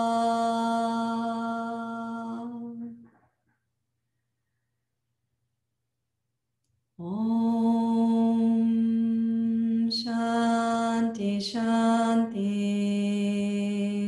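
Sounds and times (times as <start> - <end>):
woman chanting in long notes: 0.0 - 3.0, 7.0 - 14.0.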